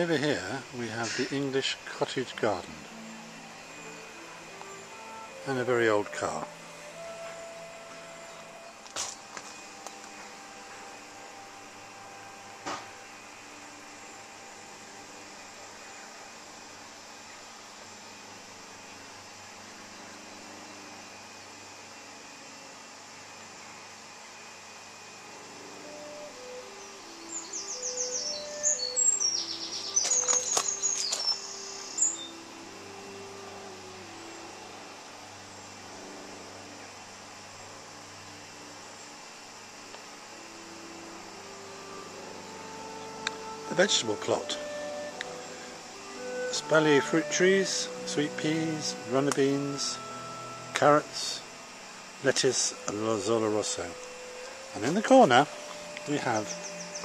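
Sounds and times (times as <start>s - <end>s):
steady low hiss: 0.0s - 57.0s
bird chirping and trilling: 26.6s - 33.4s, 55.4s - 57.0s.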